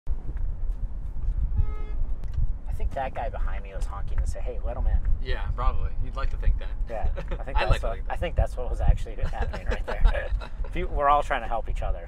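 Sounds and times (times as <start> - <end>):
car horn honk: 1.6 - 2.0.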